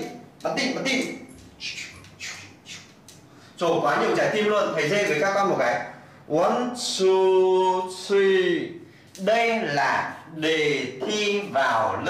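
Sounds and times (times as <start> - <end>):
man making hissing mouth sounds: 1.6 - 3.2.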